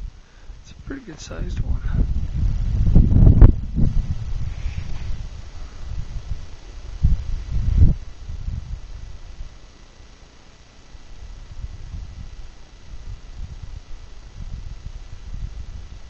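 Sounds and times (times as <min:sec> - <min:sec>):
wind buffeting microphone: 0:00.0 - 0:09.6, 0:11.0 - 0:16.0.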